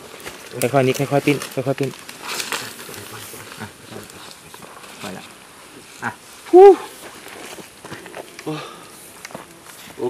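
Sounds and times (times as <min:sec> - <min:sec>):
dry leaves rustling underfoot: 0:00.0 - 0:10.0.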